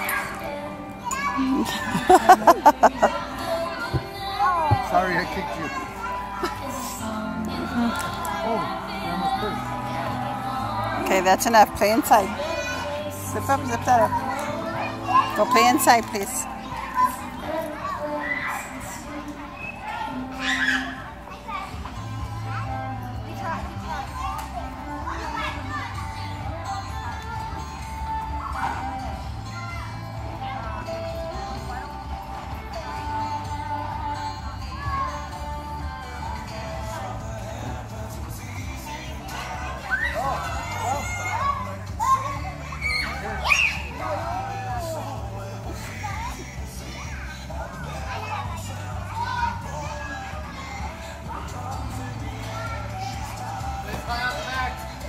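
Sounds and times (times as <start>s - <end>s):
children playing and calling out: 0.0s - 11.1s, 12.1s - 55.0s
background music with bass line: 21.8s - 55.0s.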